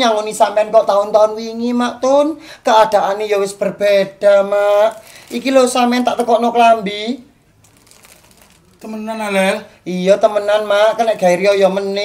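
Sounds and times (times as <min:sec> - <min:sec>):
plastic wrapping crinkling: 0:04.6 - 0:06.6, 0:07.5 - 0:09.6, 0:10.6 - 0:12.0.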